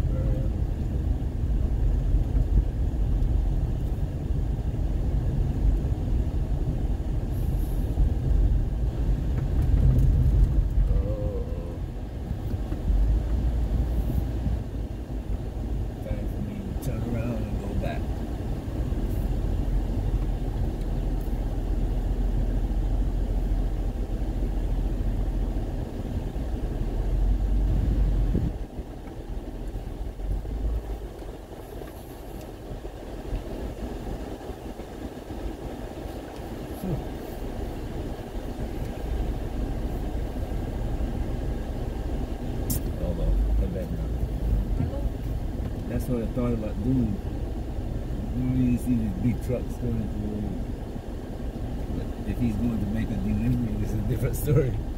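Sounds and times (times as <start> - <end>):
car engine and tyre rumble: 0.0 - 54.9.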